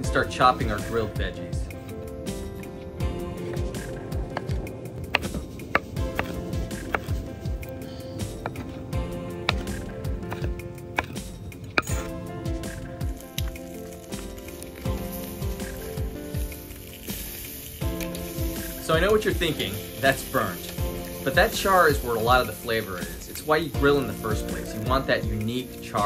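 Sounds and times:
background music: 0.0 - 26.0
knife chopping on wooden board: 4.3 - 8.8, 9.4 - 12.1.

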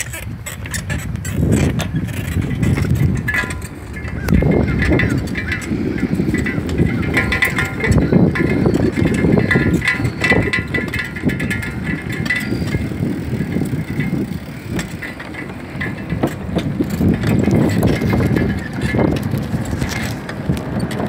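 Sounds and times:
bicycle tyres on wooden planks: 0.0 - 21.0
bike rattling: 0.0 - 21.0.

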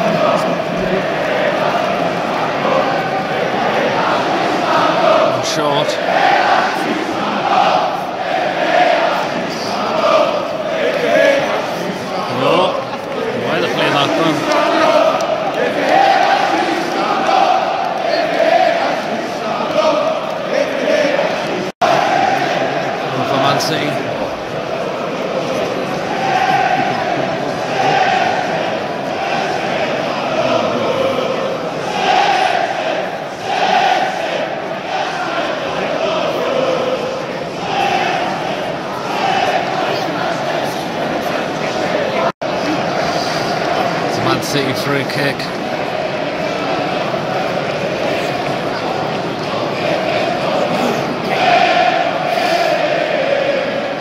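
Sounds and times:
stadium crowd chanting: 0.0 - 54.0.

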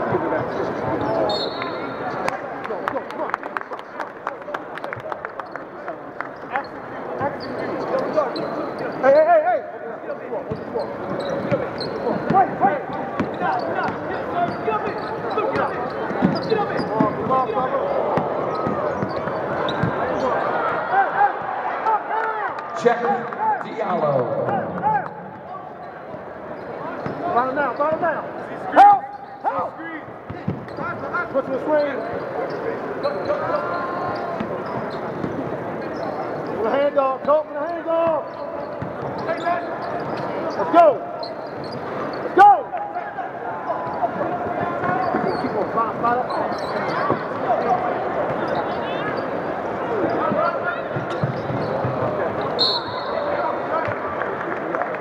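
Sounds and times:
sneakers squeaking on court: 6.6 - 9.0, 10.4 - 20.6, 25.0 - 28.0, 29.0 - 42.4, 43.8 - 53.4.

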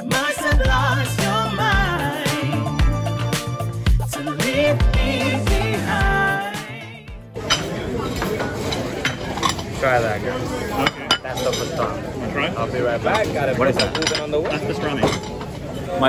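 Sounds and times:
crowd chatter: 0.0 - 16.0
plates and cutlery clinking: 7.4 - 12.0, 13.0 - 15.7.

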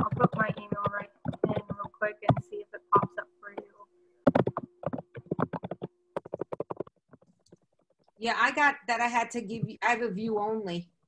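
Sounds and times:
keyboard typing: 0.0 - 7.7.

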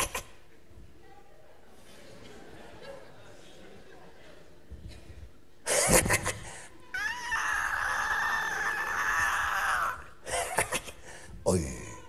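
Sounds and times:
high cat-like wail: 6.9 - 10.1.

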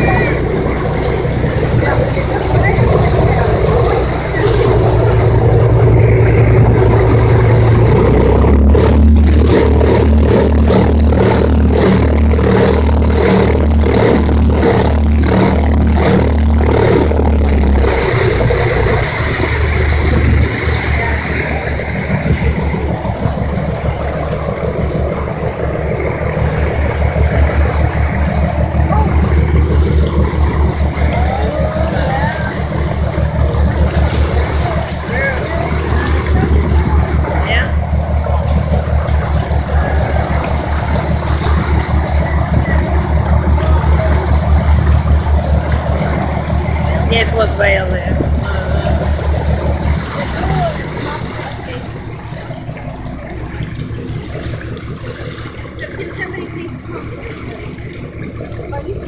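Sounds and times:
motorboat engine droning: 0.0 - 59.0
water rushing past hull: 0.0 - 59.0.

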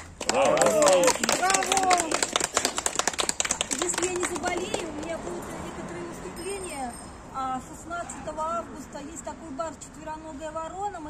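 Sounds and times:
applause: 0.0 - 5.2
people shouting bravo: 0.2 - 2.2.

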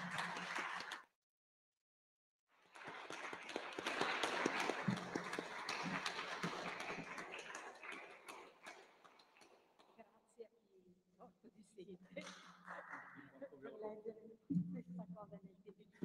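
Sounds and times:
audience applause: 0.0 - 1.0, 2.6 - 9.6.

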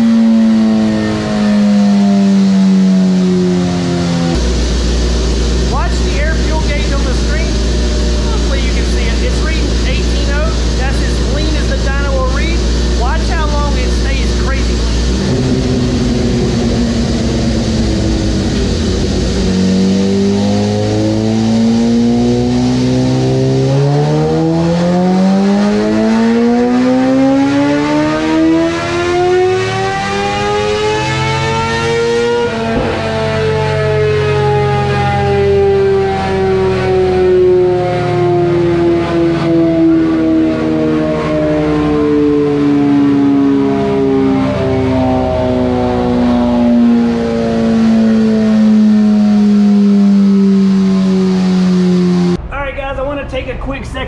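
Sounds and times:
dyno roller winding down: 0.0 - 52.5
motorcycle engine revving: 0.0 - 52.5.

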